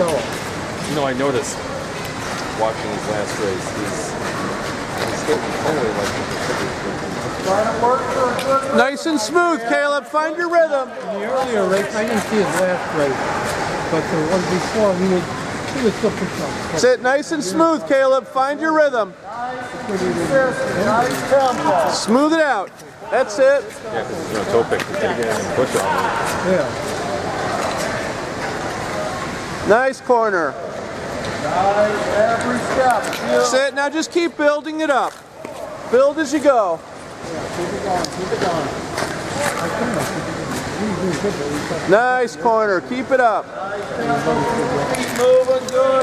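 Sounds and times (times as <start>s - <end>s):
people talking: 0.0s - 1.7s, 2.4s - 30.6s, 31.3s - 46.0s.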